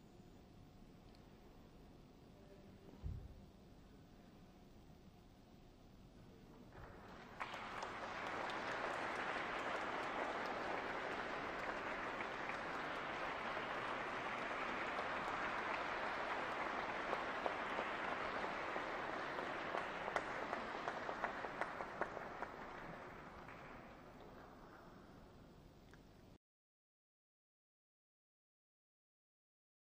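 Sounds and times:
audience applauding: 6.7 - 24.9.

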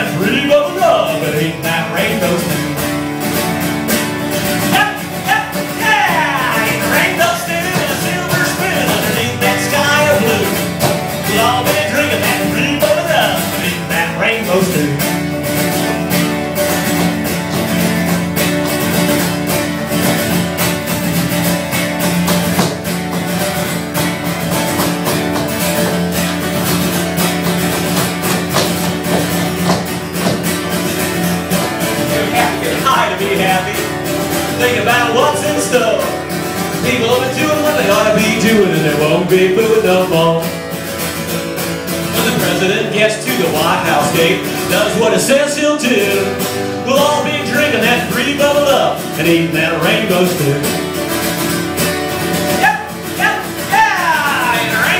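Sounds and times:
acoustic guitar strumming: 0.0 - 54.9
bending melody line: 0.3 - 40.6.

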